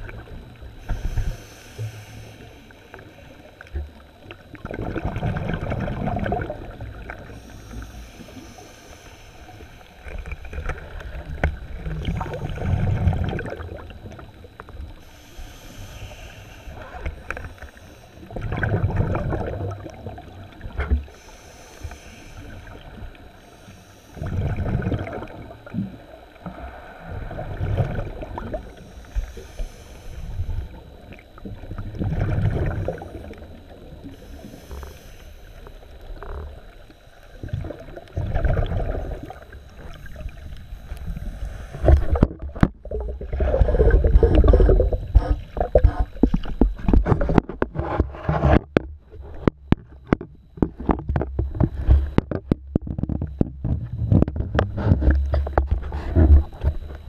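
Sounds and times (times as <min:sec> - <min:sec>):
steady underwater rush: 0:00.0 - 0:57.0
regulator hissing inhale: 0:00.6 - 0:04.0, 0:07.0 - 0:13.2, 0:14.2 - 0:18.6, 0:20.6 - 0:31.7, 0:32.7 - 0:38.1, 0:38.8 - 0:42.3
exhale bubbling: 0:04.4 - 0:36.7, 0:37.3 - 0:47.2.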